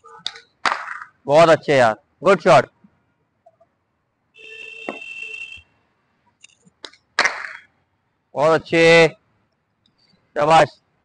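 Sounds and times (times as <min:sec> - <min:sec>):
cricket bat striking ball: 0:04.8 - 0:05.1.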